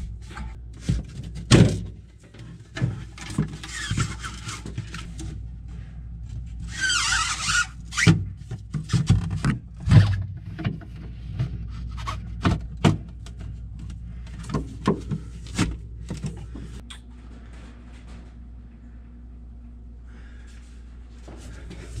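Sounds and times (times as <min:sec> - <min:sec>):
plastic scraping and rubbing: 0:02.4 - 0:05.3, 0:06.4 - 0:16.8.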